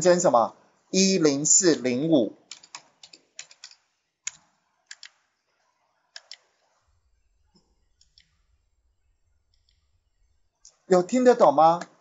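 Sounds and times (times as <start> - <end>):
faint keyboard clicks: 2.5 - 5.3, 6.1 - 6.7, 7.5 - 8.4.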